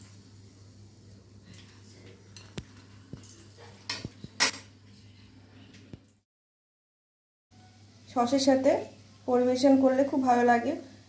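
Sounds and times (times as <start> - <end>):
dishes clinking and knocking: 2.3 - 4.8.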